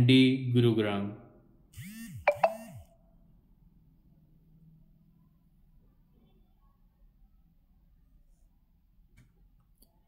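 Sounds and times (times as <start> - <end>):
electronic ding chime: 2.3 - 2.8.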